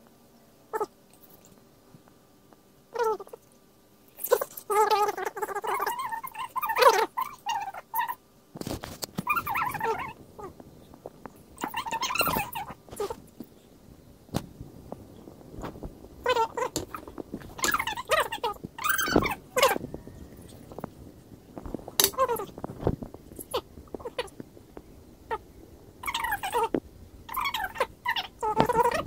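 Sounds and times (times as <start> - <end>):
rustle: 0.0 - 29.0.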